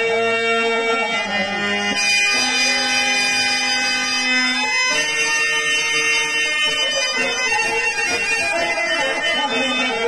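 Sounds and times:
harmonium: 0.0s - 10.0s.

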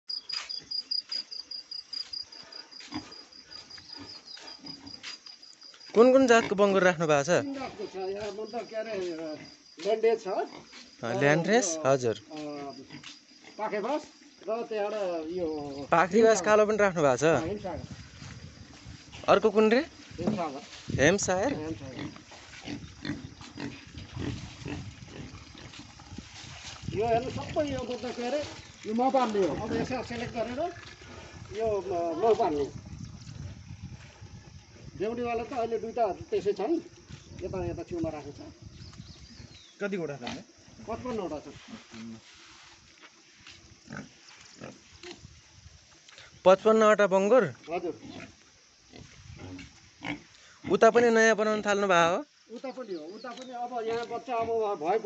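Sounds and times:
insect chirping: 0.0s - 55.0s
young pigs grunting: 21.4s - 26.3s, 28.4s - 32.6s, 48.0s - 50.8s.

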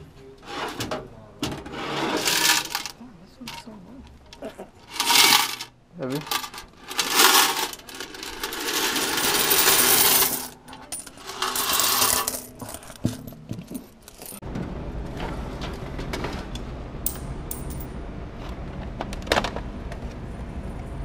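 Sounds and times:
coins jingling into cloth bag: 6.3s - 14.4s.

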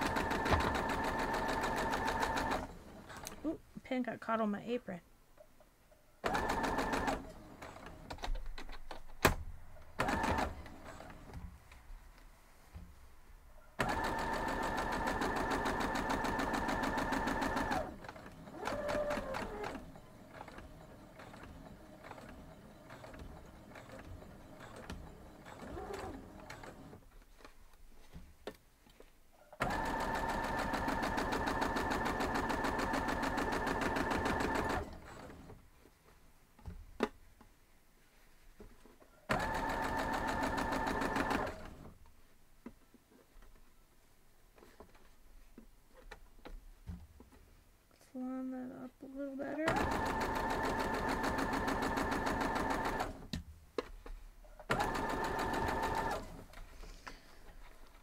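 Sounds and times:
sewing machine stitching: 0.0s - 3.4s, 6.2s - 8.7s, 10.0s - 11.3s, 13.8s - 27.0s, 29.6s - 35.6s, 39.3s - 42.0s, 49.6s - 53.4s, 54.6s - 56.6s.

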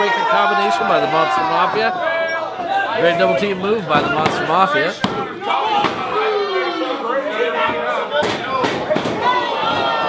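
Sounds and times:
people shouting: 0.0s - 10.0s.

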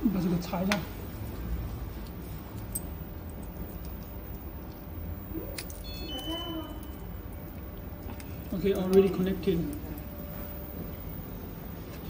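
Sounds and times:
low steady hum: 0.0s - 12.0s
high electronic beep: 5.3s - 7.1s.

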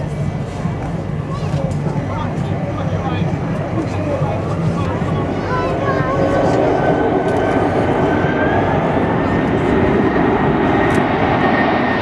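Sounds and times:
jet engines rumbling: 0.0s - 12.0s
spectator chatter: 0.0s - 12.0s.

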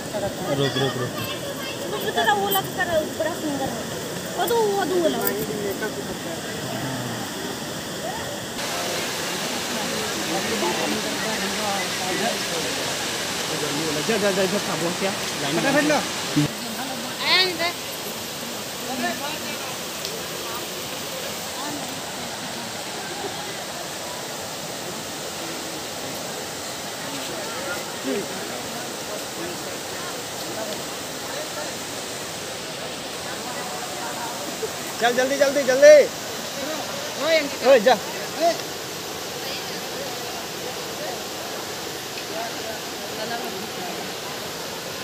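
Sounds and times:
faint voices chattering: 0.0s - 45.0s
flowing water rushing: 0.0s - 45.0s.

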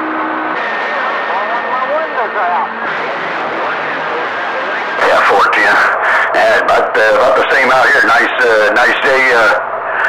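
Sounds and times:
radio static hiss: 0.6s - 10.0s
faint garbled radio voice: 0.8s - 10.0s.

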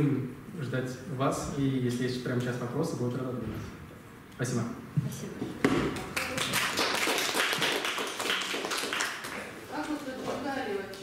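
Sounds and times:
audience applauding: 6.0s - 9.6s.

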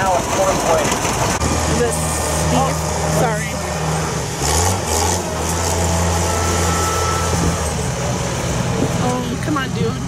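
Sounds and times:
engines running at low speed: 0.0s - 10.0s.

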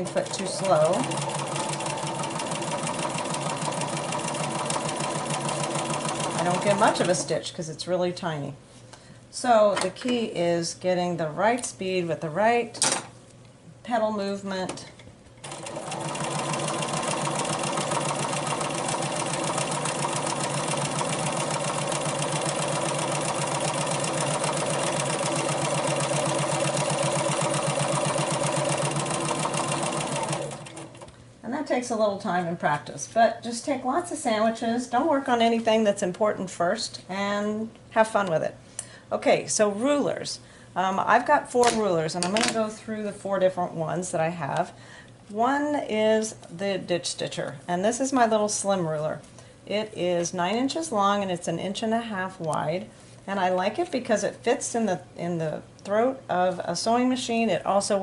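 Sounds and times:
sewing machine stitching fast: 0.0s - 7.2s, 15.4s - 31.0s.

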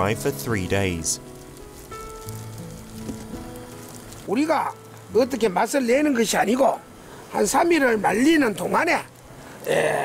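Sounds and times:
music with sustained held notes: 0.0s - 9.6s
steady hiss: 0.0s - 10.0s.

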